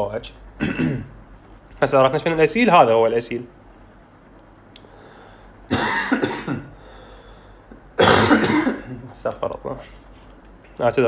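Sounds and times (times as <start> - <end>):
man coughing: 0.6 - 1.1, 5.7 - 6.8, 8.0 - 9.1.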